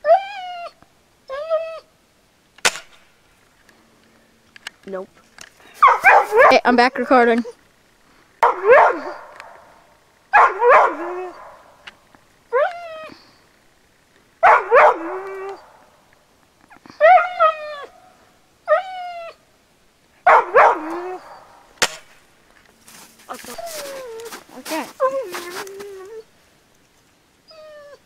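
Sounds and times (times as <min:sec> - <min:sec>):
sharp snap: 0:02.6 - 0:03.1, 0:21.8 - 0:22.2
dog barking: 0:05.8 - 0:06.7, 0:08.4 - 0:09.7, 0:10.4 - 0:11.7, 0:14.4 - 0:15.7, 0:20.2 - 0:21.6.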